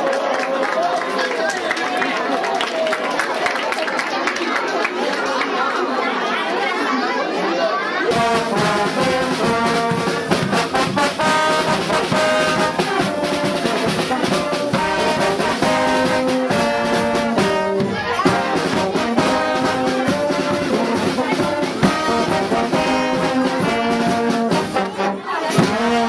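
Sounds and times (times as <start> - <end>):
crowd chattering: 0.0 - 26.0
wind band playing: 8.0 - 26.0.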